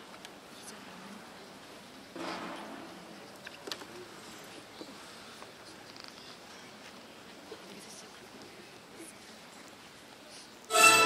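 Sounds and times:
low hum of arena hall: 0:00.0 - 0:11.0.

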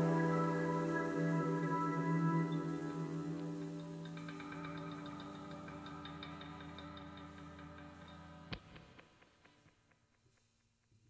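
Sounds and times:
ambient music with low tones: 0:00.0 - 0:09.3.

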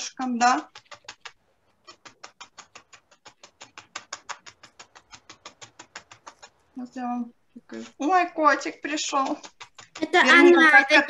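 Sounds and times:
felting needle jabbing into foam: 0:00.0 - 0:11.0.

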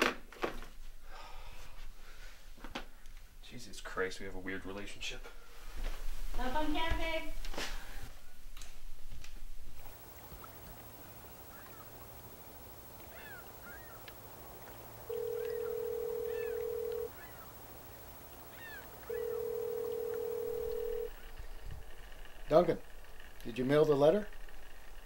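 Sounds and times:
birds chirping: 0:09.8 - 0:21.6
telephone ringback tone: 0:15.1 - 0:17.1, 0:19.0 - 0:21.2.

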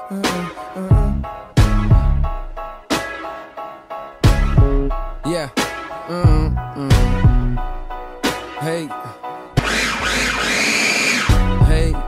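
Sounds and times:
background music: 0:00.0 - 0:12.0
food processor motor running: 0:09.6 - 0:11.3.

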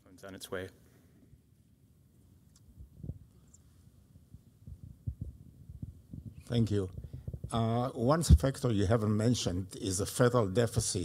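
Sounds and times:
microphone handling thumps and rubs: 0:02.8 - 0:03.3, 0:04.3 - 0:08.6.

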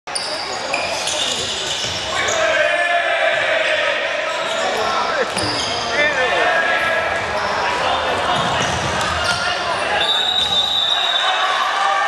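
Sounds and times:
sneakers squeaking: 0:00.1 - 0:02.6, 0:04.3 - 0:11.6
ball bouncing on court floor: 0:08.2 - 0:09.5.

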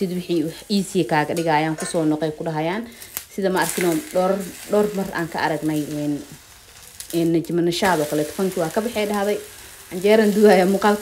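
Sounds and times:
woman talking: 0:00.0 - 0:06.4, 0:07.1 - 0:11.0.

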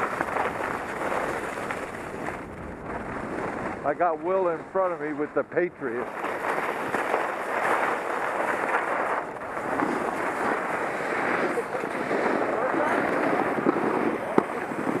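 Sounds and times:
skis scraping on snow: 0:00.0 - 0:15.0
wind rushing over microphone: 0:00.0 - 0:15.0.

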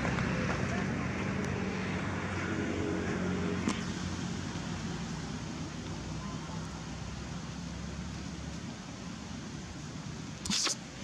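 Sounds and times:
vehicle engine rumbling: 0:00.0 - 0:11.0
sharp click: 0:10.4 - 0:10.8.

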